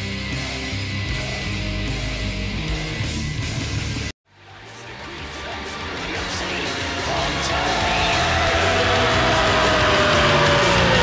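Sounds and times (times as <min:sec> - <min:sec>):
distorted guitars and drums: 0:00.0 - 0:11.0.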